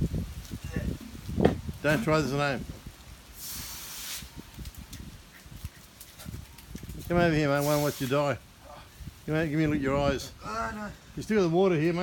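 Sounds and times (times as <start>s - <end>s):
garden hose spraying water: 1.3s - 5.1s, 6.7s - 8.5s.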